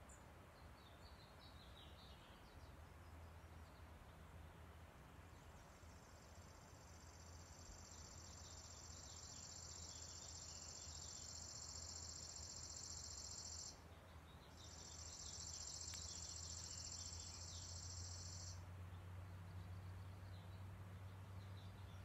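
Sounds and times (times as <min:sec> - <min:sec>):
high-pitched insect trill: 0:06.4 - 0:13.8, 0:14.7 - 0:18.6.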